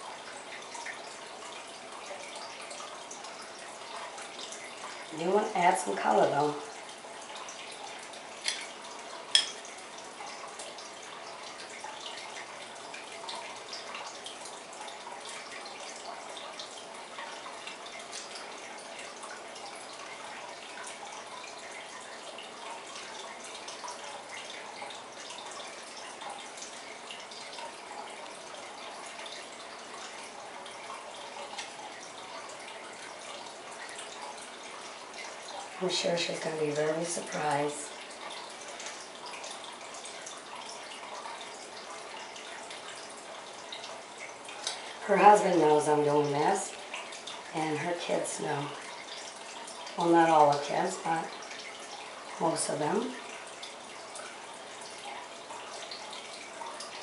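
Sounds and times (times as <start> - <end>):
faint room hum: 0.0 - 57.0
spoon clicking on bowl: 9.3 - 9.6.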